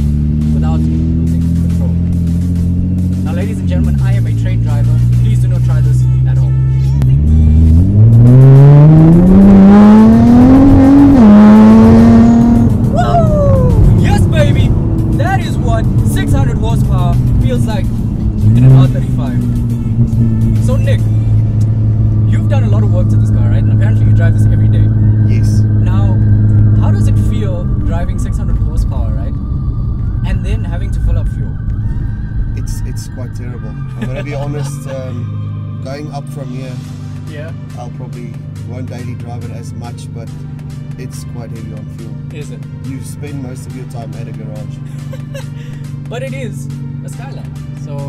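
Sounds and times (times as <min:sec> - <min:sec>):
car engine revving from cabin: 0:06.9 - 0:13.0.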